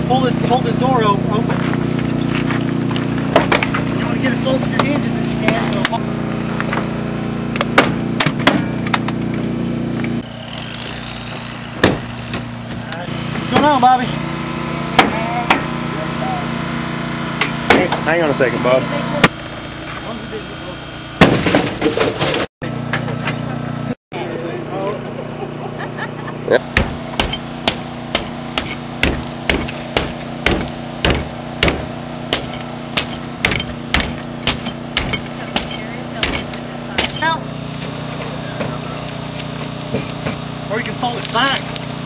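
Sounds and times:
small engine running: 0:00.0 - 0:42.0
axe chopping into windshield glass: 0:03.3 - 0:03.8, 0:07.5 - 0:09.3, 0:11.8 - 0:12.5, 0:21.2 - 0:22.5, 0:26.7 - 0:37.3
sharp knocks: 0:03.3 - 0:03.9, 0:07.6 - 0:09.2, 0:11.3 - 0:12.8, 0:15.0 - 0:15.7, 0:17.4 - 0:18.0, 0:21.2 - 0:23.1, 0:26.7 - 0:37.3.

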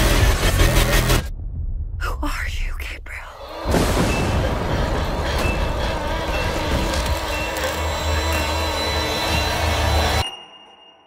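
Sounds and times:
deep rumble: 0:00.0 - 0:10.1.

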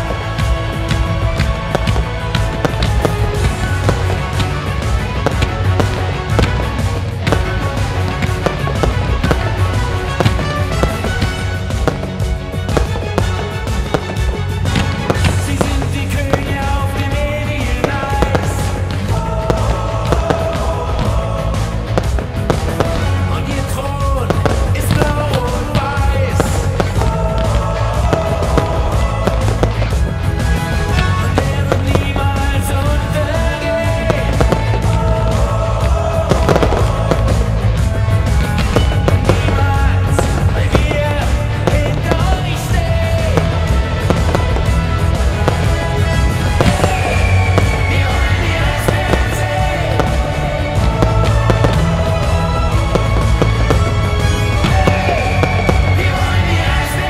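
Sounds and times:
fireworks bursting and crackling: 0:00.0 - 0:57.0
pop music: 0:00.0 - 0:57.0.

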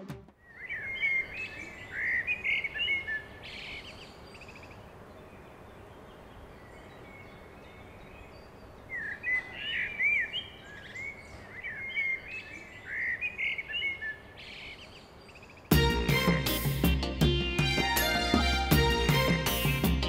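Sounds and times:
loud music: 0:00.0 - 0:00.3, 0:15.7 - 0:20.0
faint outdoor hiss: 0:00.0 - 0:20.0
small birds chirping: 0:00.4 - 0:15.7.

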